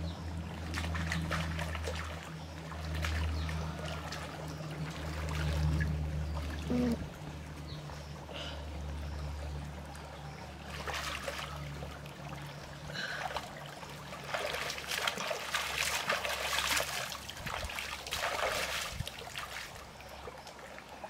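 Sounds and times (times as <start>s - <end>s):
stream trickling: 0.0s - 21.0s
hands splashing water: 0.6s - 6.9s, 10.7s - 11.7s, 13.1s - 20.0s.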